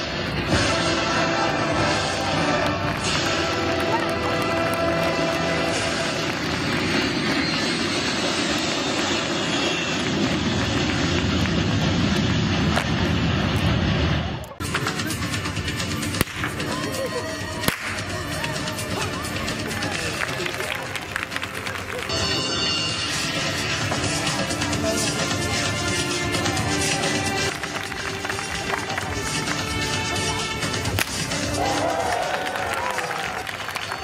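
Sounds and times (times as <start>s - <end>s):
loud backing music: 0.0s - 9.3s, 14.6s - 34.0s
sharp whip cracks: 16.2s - 16.5s, 17.6s - 18.1s, 30.9s - 31.2s.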